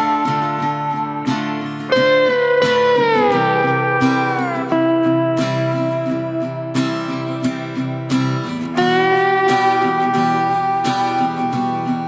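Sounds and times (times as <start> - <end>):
slide electric guitar: 0.0 - 12.0
strummed acoustic guitar: 0.0 - 12.0.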